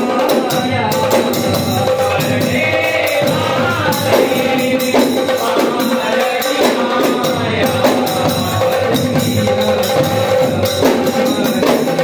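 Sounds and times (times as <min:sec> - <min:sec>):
clay-pot drums: 0:00.0 - 0:12.0
men singing in chorus: 0:00.0 - 0:12.0
small drum: 0:00.0 - 0:12.0.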